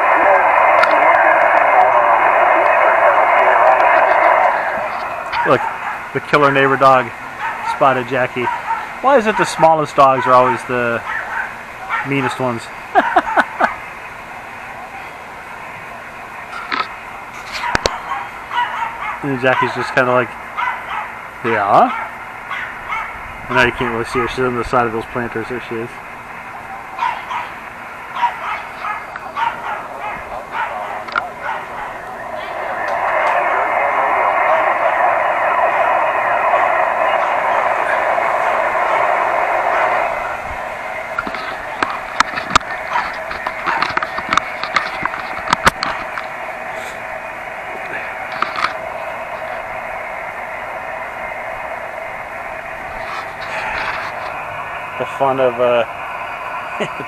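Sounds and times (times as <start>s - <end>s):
radio static hiss: 0.0s - 57.0s
dog barking: 5.3s - 6.1s, 7.4s - 7.8s, 8.4s - 9.0s, 10.2s - 12.2s, 13.0s - 13.7s, 17.6s - 19.8s, 20.6s - 21.2s, 21.9s - 23.2s, 27.0s - 32.1s, 42.9s - 43.1s.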